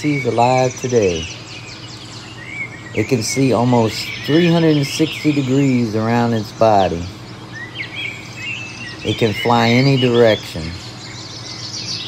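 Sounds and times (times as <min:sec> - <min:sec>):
birds chirping: 0:00.0 - 0:12.0
outdoor background hiss: 0:00.0 - 0:12.0.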